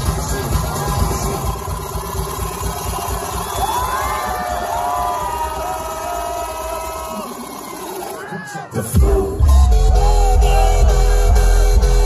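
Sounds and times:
pulsing bass: 0.0 - 7.4, 8.9 - 12.0
crowd cheering: 0.0 - 12.0
electronic dance music: 0.0 - 12.0.

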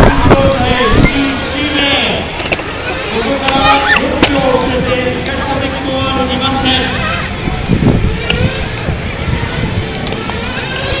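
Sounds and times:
outdoor noise: 0.0 - 11.0
people talking: 0.0 - 11.0.

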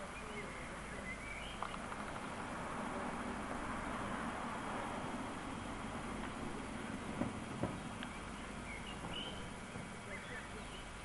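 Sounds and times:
bird chirps: 0.0 - 2.4, 7.7 - 11.0
steady hiss: 0.0 - 11.0
soft knocks: 7.2 - 7.9.

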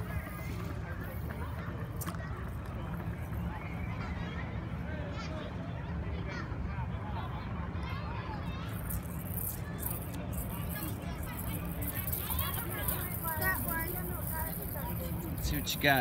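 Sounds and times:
background voices and chatter: 0.0 - 16.0.

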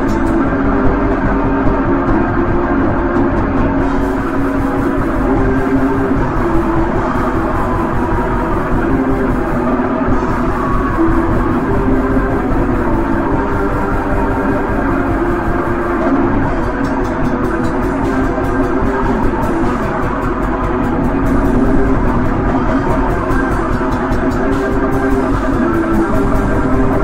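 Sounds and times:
distorted black metal guitars: 0.0 - 27.0
drums: 0.0 - 27.0.

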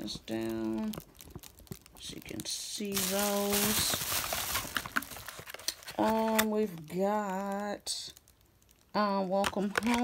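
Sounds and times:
packaging rustling: 0.0 - 7.6, 9.4 - 10.0.

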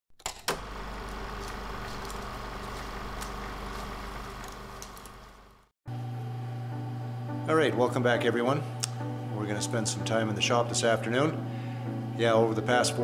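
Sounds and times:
machine running with low hum: 0.6 - 10.7.

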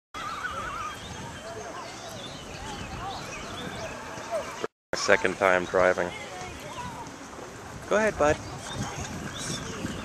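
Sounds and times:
high wavering animal call: 0.2 - 1.0.

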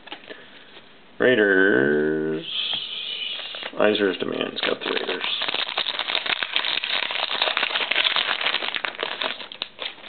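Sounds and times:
wrapper crinkling and tearing: 4.4 - 10.0.

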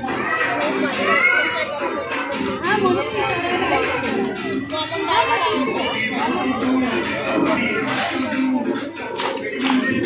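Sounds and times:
children shouting and chattering: 0.0 - 10.0
crowd of voices: 0.0 - 10.0.

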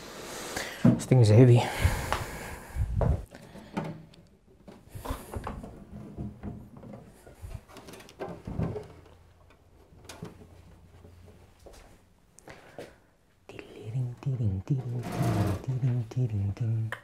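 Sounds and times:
scraping: 14.8 - 16.0.

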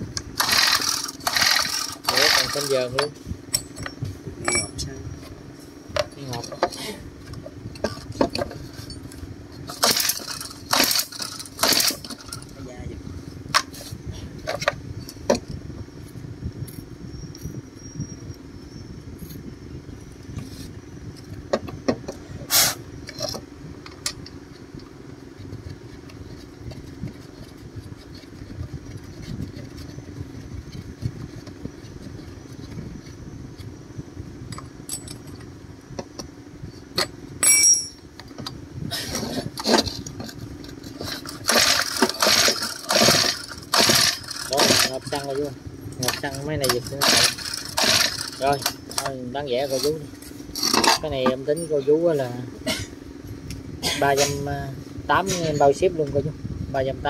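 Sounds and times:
steady low hum: 0.0 - 57.0
metal engine parts clinking: 0.3 - 5.0, 6.0 - 12.6, 34.5 - 36.3, 36.9 - 51.9
rattling clatter: 0.3 - 5.0, 6.0 - 12.8, 36.9 - 51.9.

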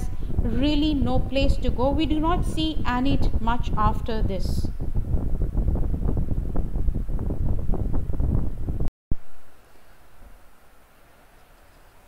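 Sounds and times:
wind buffeting microphone: 0.0 - 8.9.

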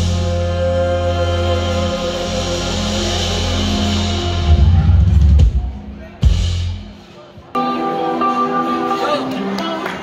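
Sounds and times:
electric guitar chords: 0.0 - 5.5, 7.6 - 10.0.

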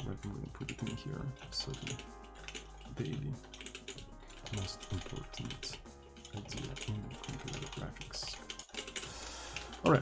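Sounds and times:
typing on a computer keyboard: 0.5 - 10.0.

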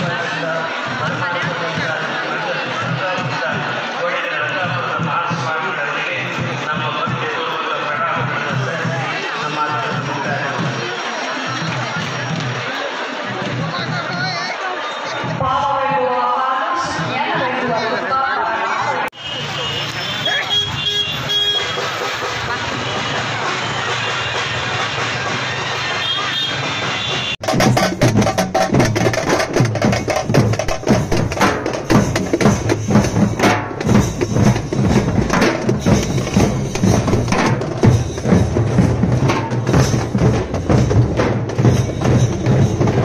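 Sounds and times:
crowd voices: 0.0 - 43.0
barrel drums beating fast: 21.6 - 43.0
music: 21.6 - 43.0.

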